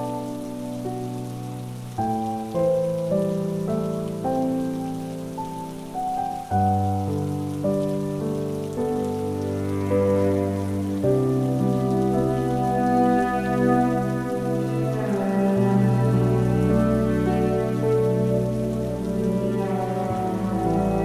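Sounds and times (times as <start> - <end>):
cello and piano music: 0.0 - 21.0
rain pattering: 0.0 - 21.0.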